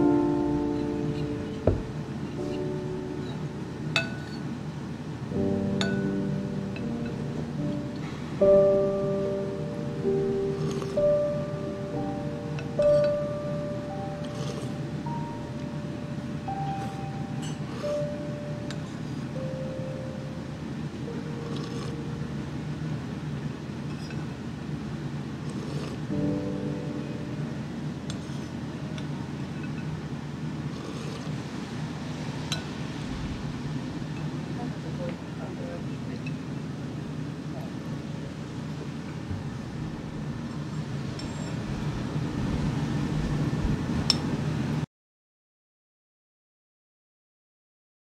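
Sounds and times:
simple background music melody: 0.0 - 23.8, 26.1 - 30.6
steady low hum: 0.0 - 44.8
spoon clinking against bowl: 4.0 - 4.5, 5.8 - 6.2, 17.4 - 17.8.

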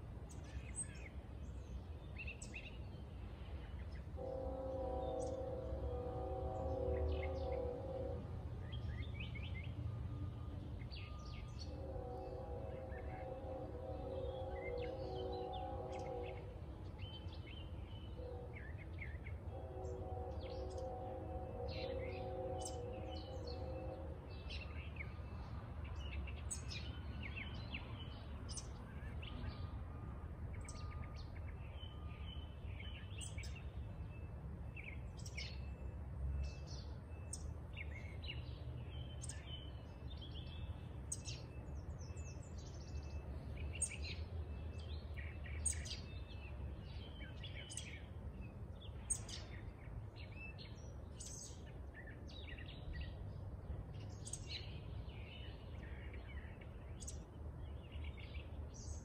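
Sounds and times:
distant horn blasts: 4.0 - 25.9.

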